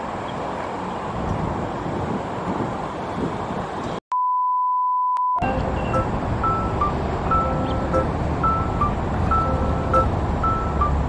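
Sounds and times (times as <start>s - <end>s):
outdoor background noise: 0.0s - 4.0s
test-tone beep: 4.1s - 11.0s.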